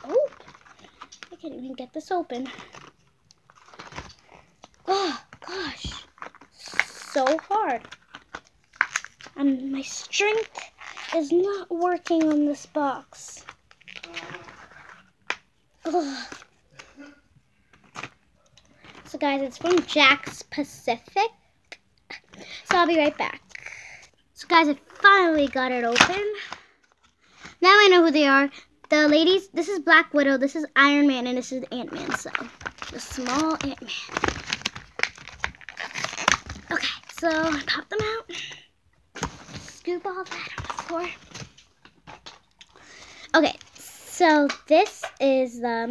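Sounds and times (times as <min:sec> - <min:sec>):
plastic packaging crinkling: 0:00.0 - 0:15.4, 0:31.8 - 0:38.5, 0:39.1 - 0:45.2
packaging snapping: 0:02.4 - 0:09.4, 0:32.0 - 0:38.2
hands prying at plastic packaging: 0:02.6 - 0:09.4, 0:32.0 - 0:38.2.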